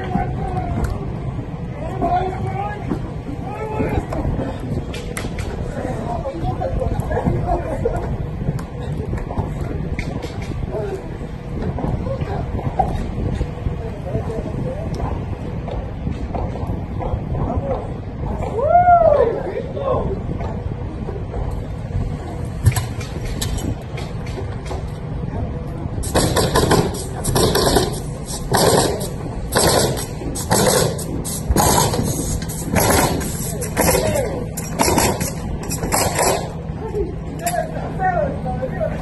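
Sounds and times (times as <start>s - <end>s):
steady low rumble: 0.0s - 39.0s
wind noise on microphone: 0.0s - 39.0s
blows on wooden wall: 20.1s - 38.5s.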